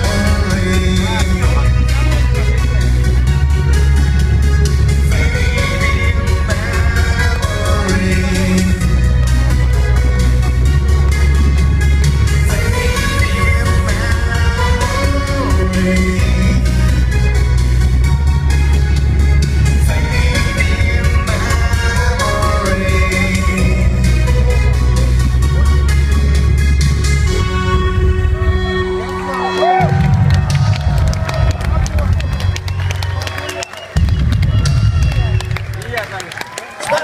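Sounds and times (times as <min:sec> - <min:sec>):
person singing: 0:00.0 - 0:03.7, 0:04.8 - 0:10.5, 0:12.2 - 0:17.7, 0:19.5 - 0:26.3
heavy bass synth: 0:00.0 - 0:33.1
live synth-pop band: 0:00.0 - 0:37.0.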